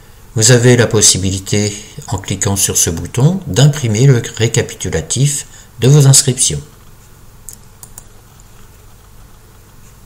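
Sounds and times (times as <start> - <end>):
low steady hum: 0.0 - 10.0
computer mouse clicks: 7.5 - 9.8.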